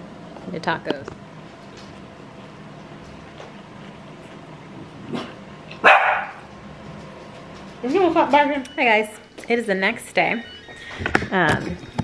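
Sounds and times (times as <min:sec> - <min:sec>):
dog barking: 0:05.1 - 0:06.4.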